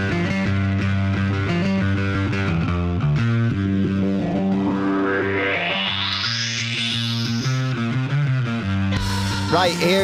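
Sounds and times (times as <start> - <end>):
bass guitar: 0.0 - 10.0
distorted electric guitar: 0.0 - 10.0
rising swept effect: 4.2 - 8.1.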